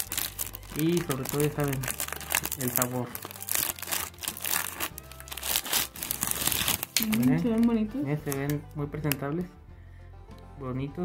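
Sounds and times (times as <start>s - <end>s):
plastic wrapper crinkling and tearing: 0.0s - 9.2s.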